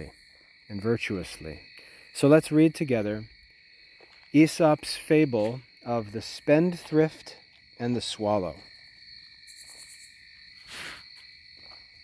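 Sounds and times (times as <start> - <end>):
short breath in: 10.6 - 11.1.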